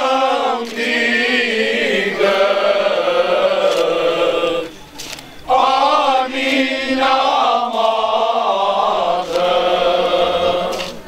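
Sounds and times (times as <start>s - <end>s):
male choir singing unaccompanied: 0.0s - 11.0s.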